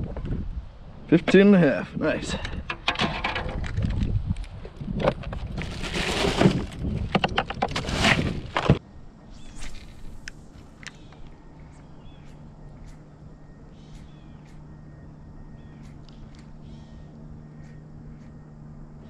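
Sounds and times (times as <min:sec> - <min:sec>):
birds calling: 0:08.8 - 0:19.0
faint low hum: 0:08.8 - 0:19.0.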